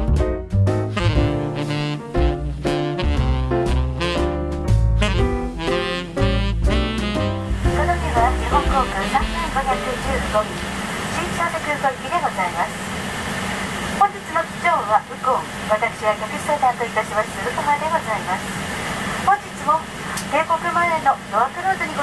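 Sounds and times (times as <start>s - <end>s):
steady low hum: 5.5s - 21.7s
voices talking: 7.7s - 12.8s.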